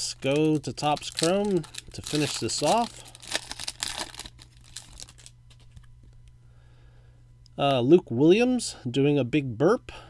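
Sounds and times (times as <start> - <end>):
foil wrapper tearing and crinkling: 0.0 - 5.8.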